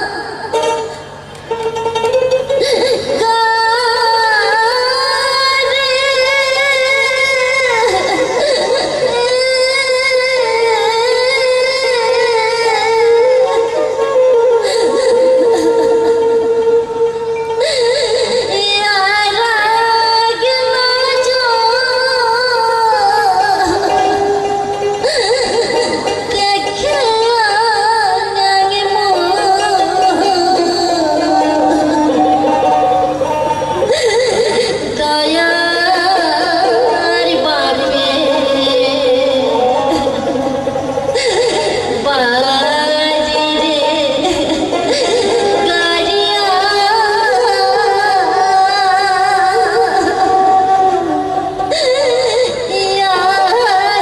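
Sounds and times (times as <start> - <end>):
folk band playing: 0.0 - 54.0
high singing voice with vibrato: 0.0 - 54.0
instrumental accompaniment: 0.0 - 54.0.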